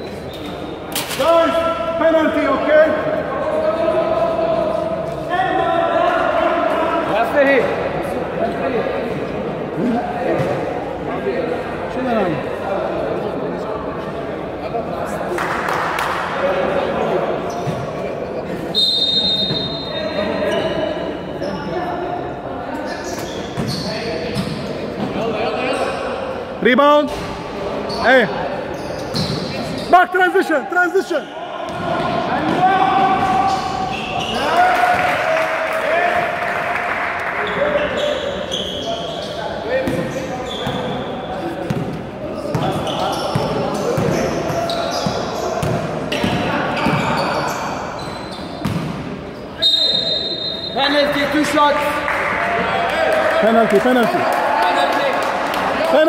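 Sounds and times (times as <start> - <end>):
shoes squeaking on floor: 17.4 - 18.0, 18.7 - 21.6, 22.8 - 26.0, 27.8 - 30.0, 32.0 - 34.6, 37.5 - 51.2
basketball bouncing on court: 39.8 - 40.9, 41.7 - 47.2, 48.6 - 49.0.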